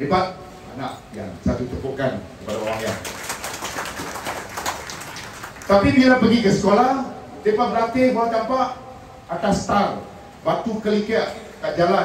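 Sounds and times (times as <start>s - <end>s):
audience clapping: 2.5s - 5.9s.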